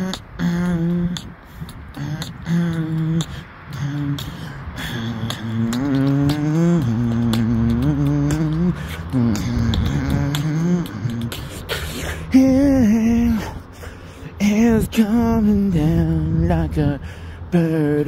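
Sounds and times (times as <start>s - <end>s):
beatboxed mouth percussion: 0.0s - 18.0s
man singing wordless melody: 0.0s - 18.0s.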